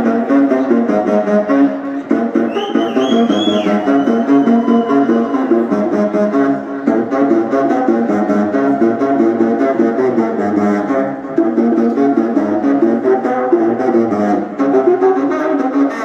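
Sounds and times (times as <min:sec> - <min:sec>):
saxophone playing fast runs: 0:00.7 - 0:16.0.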